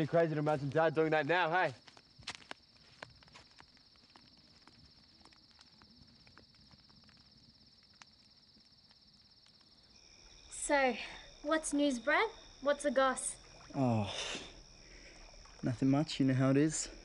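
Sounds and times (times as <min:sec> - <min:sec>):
crickets trilling: 0:00.0 - 0:17.0.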